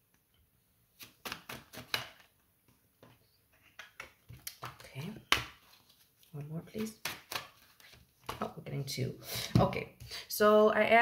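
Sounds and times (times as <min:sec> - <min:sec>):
cards being shuffled: 0:01.0 - 0:08.5.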